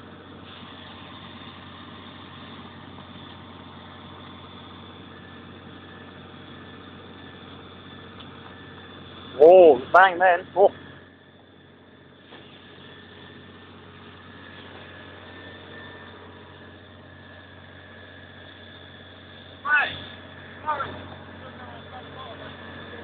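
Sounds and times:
fire engine droning: 0.0 - 23.0.

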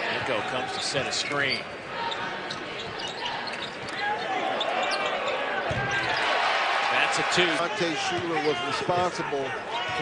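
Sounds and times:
crowd noise: 0.0 - 10.0
sneakers squeaking on hardwood: 2.0 - 6.3.

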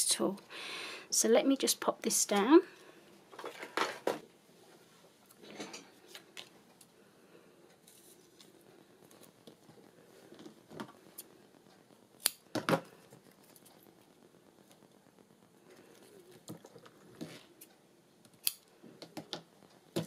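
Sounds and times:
tape crackling and clicking: 7.7 - 20.0
scissors snipping tape: 18.4 - 18.6.

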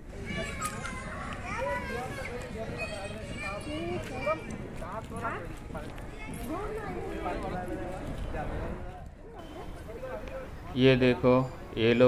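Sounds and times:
men talking: 7.1 - 12.0.

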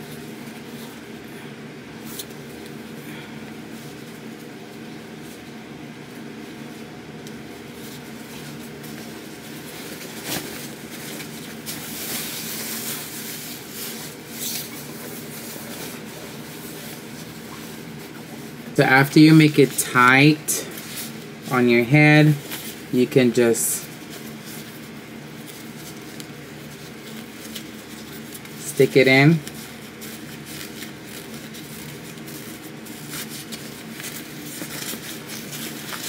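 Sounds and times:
steady hum: 0.0 - 36.0.

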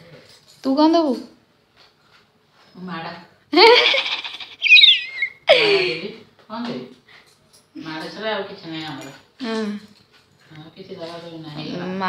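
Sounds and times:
baby crying and squealing: 4.2 - 5.6.

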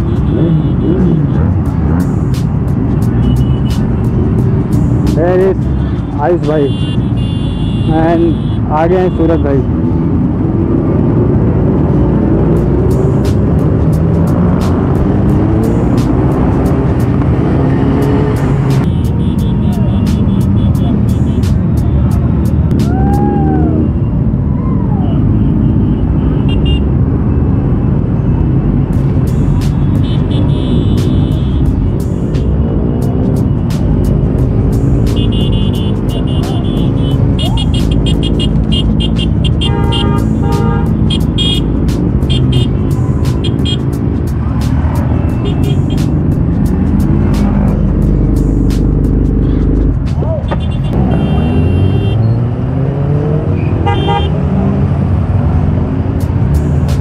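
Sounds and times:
group of motorcycle engines: 0.0 - 57.0
road noise: 0.0 - 57.0
music with a steady beat: 1.6 - 6.2, 12.6 - 23.2, 29.0 - 50.6, 56.1 - 57.0.

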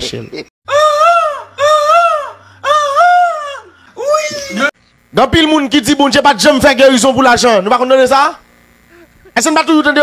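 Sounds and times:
man wailing: 0.7 - 4.8.

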